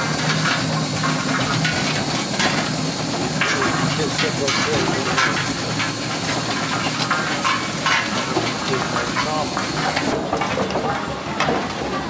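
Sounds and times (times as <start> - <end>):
hiss of steam: 0.0 - 10.3
steam roller chuffs: 0.0 - 12.0.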